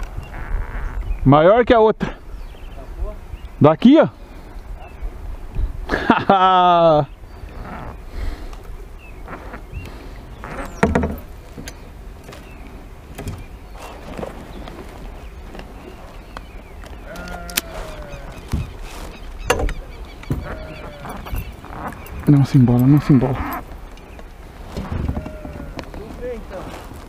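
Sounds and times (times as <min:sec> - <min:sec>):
fishing gear knocking on kayak: 0:10.8 - 0:11.7.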